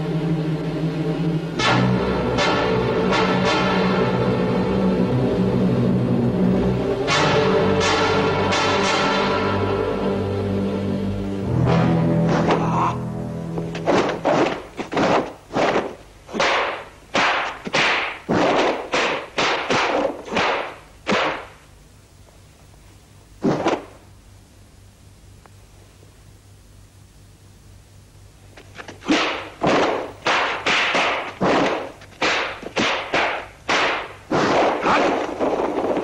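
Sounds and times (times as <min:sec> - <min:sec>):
film music: 0:00.0 - 0:14.7
punches and kicks landing: 0:13.8 - 0:21.5, 0:29.0 - 0:36.0.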